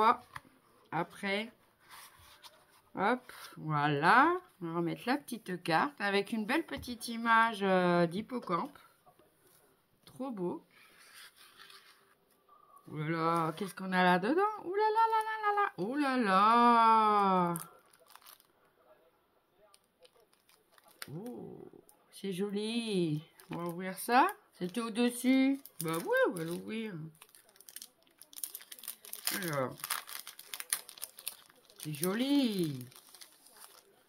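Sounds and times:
paper and card rustling: 1.8 - 3.5, 10.8 - 12.3, 25.6 - 34.0.

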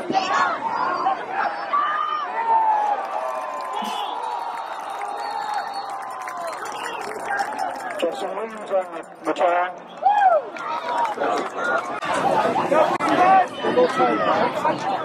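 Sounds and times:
crowd yelling and cheering: 0.0 - 15.0.

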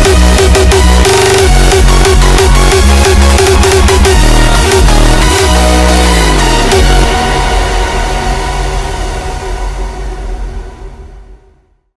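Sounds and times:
low bass tone: 0.0 - 11.7
noisy synth wash: 0.0 - 11.7.

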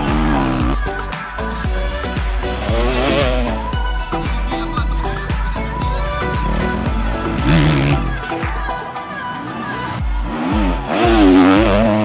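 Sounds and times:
motorcycle engine revving: 0.0 - 1.0, 1.6 - 8.5, 9.4 - 12.0.

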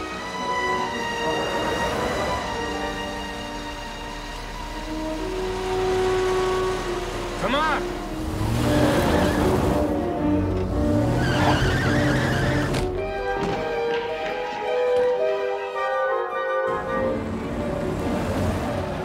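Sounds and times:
music score: 0.0 - 19.0
tyre squeal: 11.0 - 12.9.

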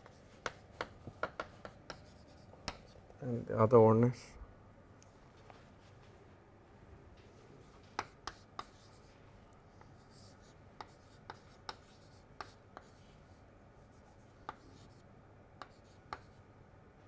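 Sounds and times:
chalk scratching: 0.0 - 3.0, 7.8 - 9.2, 9.8 - 15.0, 15.6 - 16.4
chalk tapping on chalkboard: 0.0 - 3.0, 7.8 - 9.2, 9.8 - 13.0, 13.9 - 15.0, 15.6 - 16.4.

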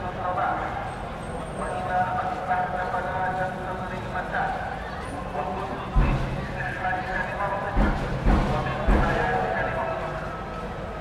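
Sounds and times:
murmur of voices: 0.0 - 11.0
steady traffic noise: 0.0 - 11.0.

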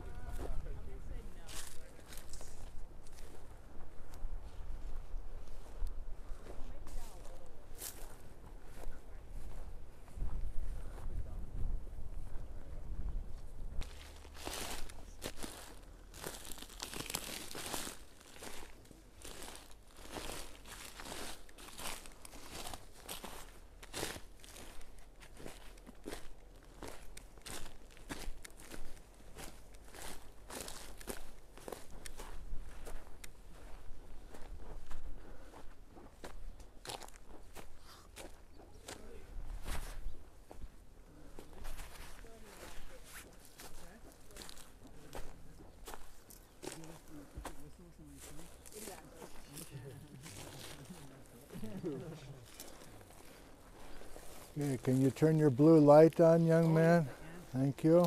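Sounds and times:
footsteps on dry pine needles: 0.0 - 11.1, 13.3 - 58.0.

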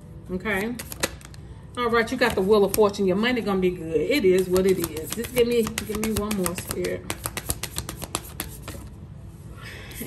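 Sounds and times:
cards being shuffled: 0.8 - 1.4.

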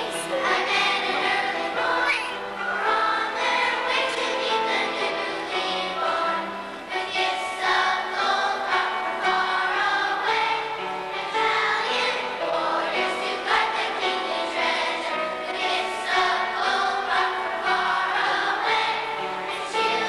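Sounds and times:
children's choir singing: 0.0 - 20.0.

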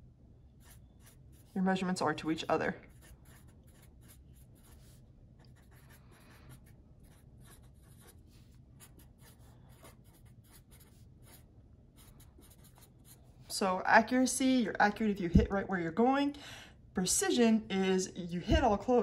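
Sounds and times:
marker scratching on paper: 0.5 - 13.3.

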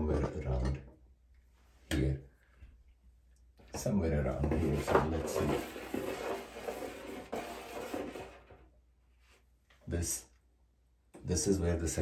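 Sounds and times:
stud finder sliding on wall: 4.5 - 8.6.

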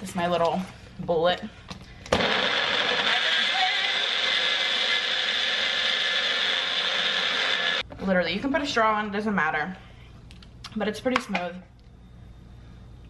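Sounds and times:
blender motor running: 2.1 - 7.8.

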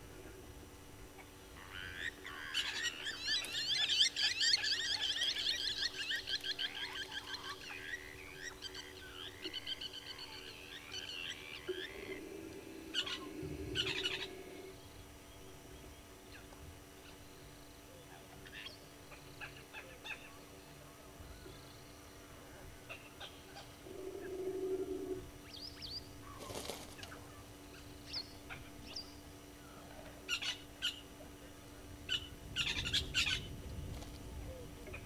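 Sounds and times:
faint steady hum: 0.0 - 35.0
birds chirping and calling: 1.6 - 14.8.

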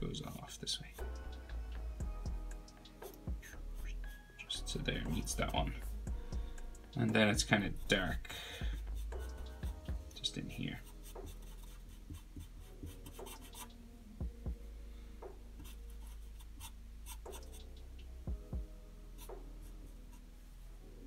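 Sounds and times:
marker scratching on paper: 8.7 - 9.8, 10.7 - 13.7, 15.6 - 17.7, 19.2 - 20.2.

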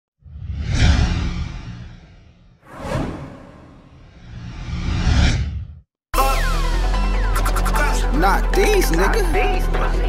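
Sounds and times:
deep whoosh: 0.4 - 5.8
short swoosh: 0.4 - 5.8.

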